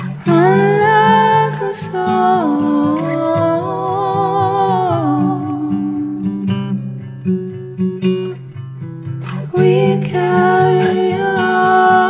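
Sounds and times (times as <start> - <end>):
wordless sung vocal: 0.0 - 6.9, 9.3 - 12.0
strummed acoustic guitar: 0.0 - 12.0.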